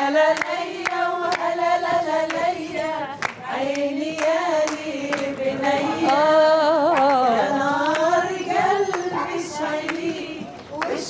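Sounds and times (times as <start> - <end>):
hands clapping in time: 0.3 - 11.0.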